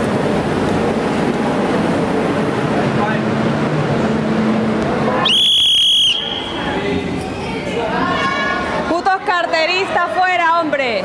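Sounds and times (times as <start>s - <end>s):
low hum: 0.0s - 7.3s
shrill whistle tone: 5.2s - 6.8s.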